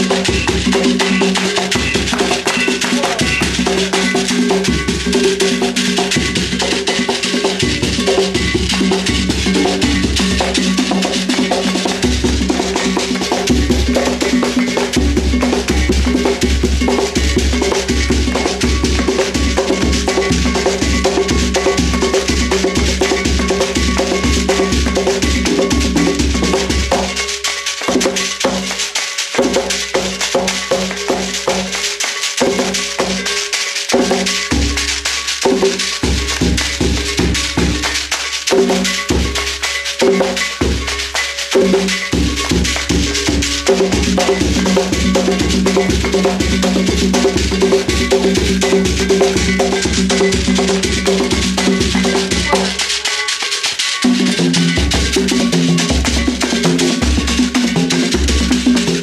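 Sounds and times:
drums rhythm: 0.0 - 59.0
rattling hand percussion: 0.0 - 59.0
steady pitched tones: 0.0 - 59.0.

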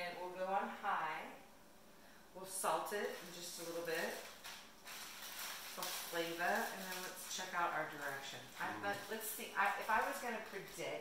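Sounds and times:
plastic packet crinkling: 2.9 - 10.9
person talking: 5.8 - 11.0.

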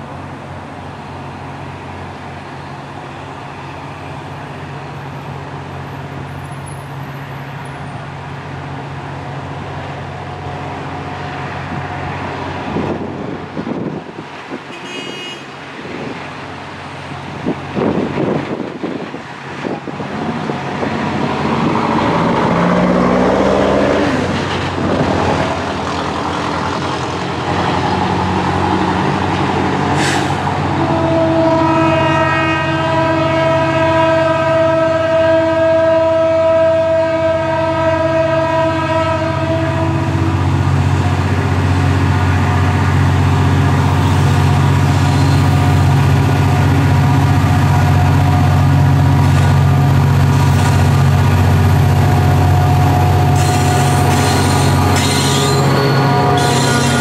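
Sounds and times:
locomotive horn chord: 30.7 - 40.4, 52.5 - 57.0
diesel engine rumble: 39.2 - 57.0.

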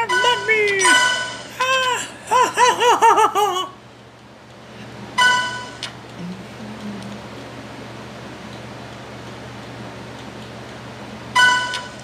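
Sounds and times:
child giggling: 1.6 - 3.8.

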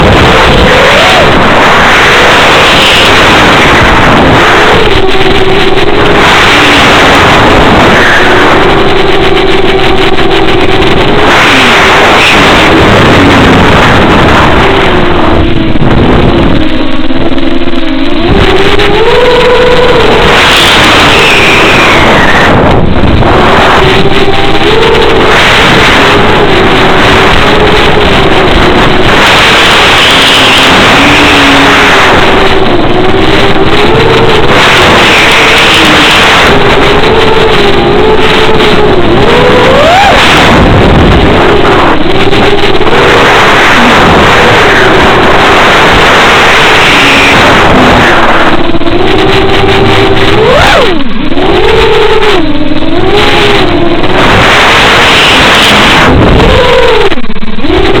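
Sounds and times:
model plane motor whine: 0.0 - 58.0
rushing wind noise: 0.0 - 58.0.

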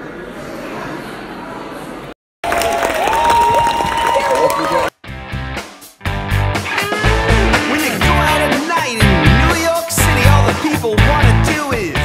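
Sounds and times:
audience applauding and cheering: 2.4 - 5.0
high whoop: 2.5 - 4.9.

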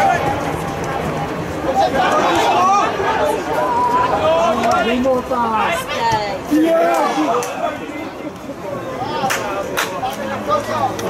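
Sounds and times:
voices calling out and chatting: 0.0 - 11.0.

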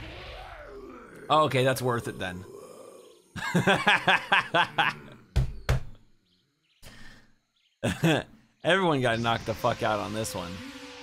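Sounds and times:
man laughing: 3.3 - 5.2, 7.8 - 8.3.

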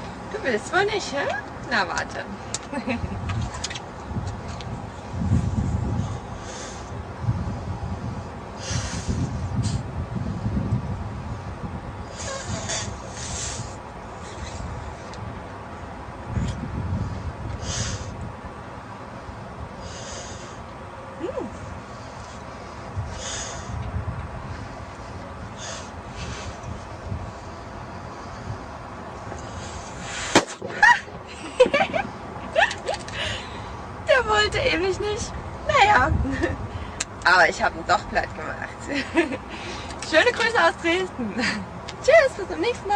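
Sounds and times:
low rumble: 1.4 - 30.1.

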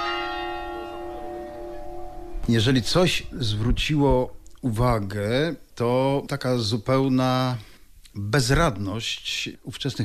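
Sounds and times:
church bell tolling: 0.0 - 4.9.

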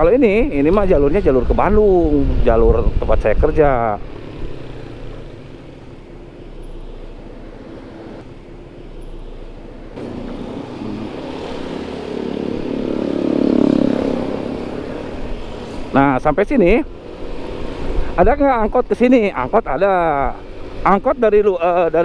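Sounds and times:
passing vehicle engine: 0.0 - 22.0
scooter engine riding: 3.7 - 16.2.

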